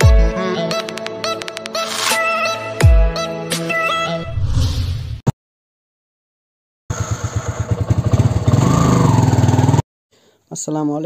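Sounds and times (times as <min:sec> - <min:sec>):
scooter engine accelerating: 0:06.9 - 0:09.8.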